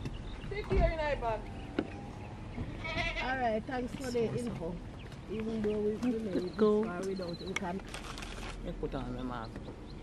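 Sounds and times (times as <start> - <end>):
people talking: 0.5 - 1.4
goat bleating: 2.8 - 3.5.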